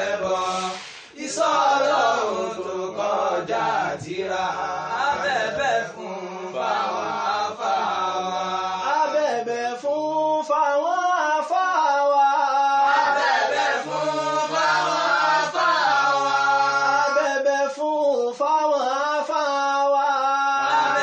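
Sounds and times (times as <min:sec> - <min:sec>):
men chanting unaccompanied: 0:00.0 - 0:21.0.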